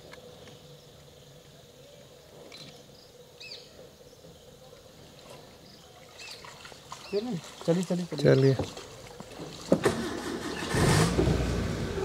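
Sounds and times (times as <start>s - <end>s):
faint chirping bird calls: 0.3s - 7.7s.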